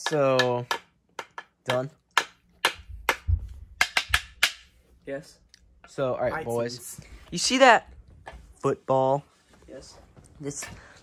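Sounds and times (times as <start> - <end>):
wooden pieces clacking: 0.0 - 4.7.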